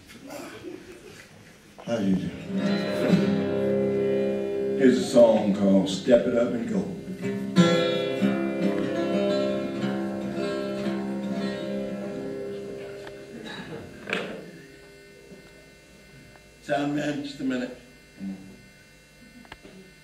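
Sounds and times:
acoustic guitar chord ringing: 0:02.2 - 0:16.2.

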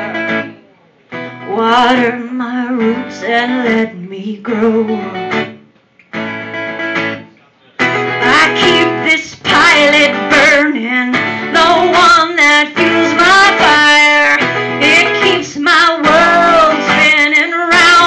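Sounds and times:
strummed acoustic guitar: 0:00.0 - 0:18.0
woman singing: 0:01.5 - 0:05.2, 0:08.2 - 0:18.0.

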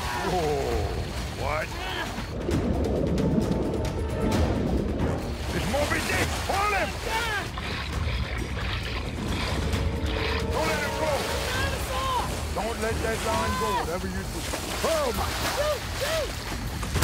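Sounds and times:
boat motor humming: 0:00.0 - 0:17.0
water churning: 0:00.0 - 0:17.0
people shouting: 0:10.4 - 0:13.9, 0:14.8 - 0:16.5.

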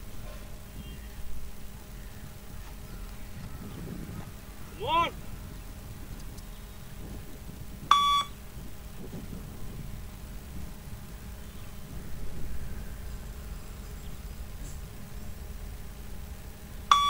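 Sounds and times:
short electronic beep: 0:07.9 - 0:08.3.

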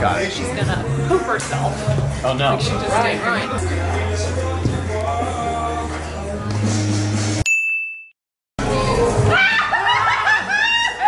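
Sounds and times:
background music: 0:00.0 - 0:07.4, 0:08.6 - 0:11.0
bright ding: 0:07.4 - 0:08.2
excited voices and laughter: 0:09.0 - 0:11.0.

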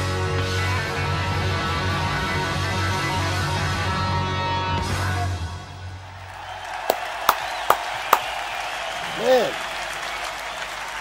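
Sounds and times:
crowd applauding and cheering: 0:05.9 - 0:11.0
sharp hand claps: 0:06.3 - 0:11.0
rising-and-falling voice: 0:09.0 - 0:09.6.

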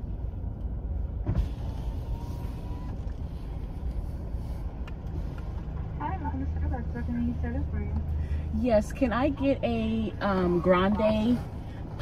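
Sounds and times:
car engine rumble inside cabin: 0:00.0 - 0:12.0.

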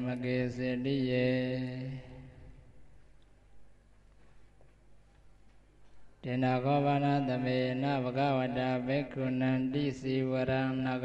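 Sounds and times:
man chanting: 0:00.0 - 0:02.6, 0:06.2 - 0:11.0.

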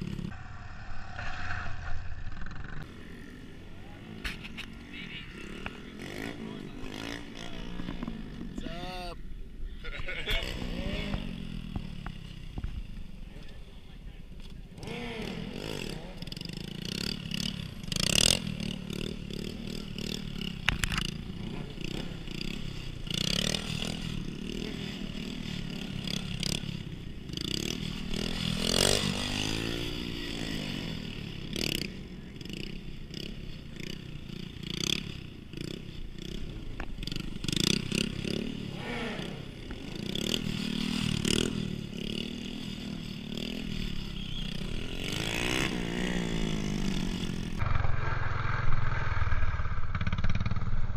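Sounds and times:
small motorcycle engines revving: 0:00.0 - 0:00.4, 0:01.1 - 0:50.9.

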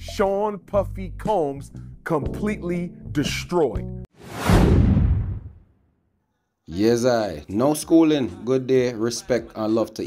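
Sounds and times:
whoosh sound effect: 0:04.2 - 0:05.6.

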